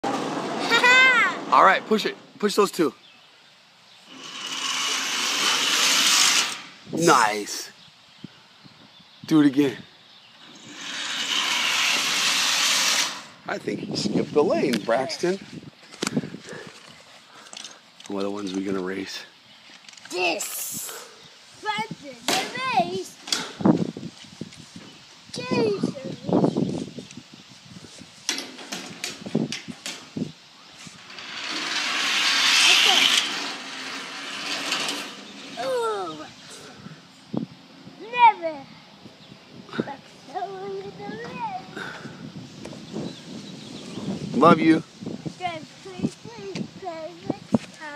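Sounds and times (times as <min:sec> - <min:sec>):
toy car rolling on metal: 0:04.1 - 0:06.7, 0:10.5 - 0:13.4, 0:30.9 - 0:36.0
child making sing-song sounds: 0:21.6 - 0:23.2, 0:25.3 - 0:26.6, 0:38.0 - 0:38.8, 0:39.8 - 0:41.8, 0:45.4 - 0:47.9.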